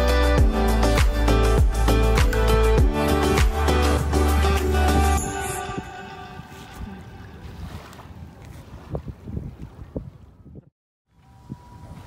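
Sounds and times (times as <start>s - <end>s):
wind buffeting microphone: 4.4s - 12.0s
small waves lapping on shore: 5.9s - 10.3s.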